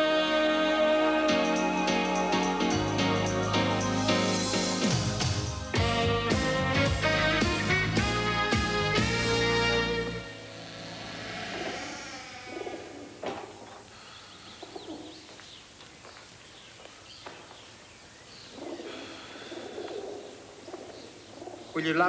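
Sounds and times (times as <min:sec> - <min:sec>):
birds cooing: 0:10.9 - 0:15.8, 0:17.2 - 0:22.0.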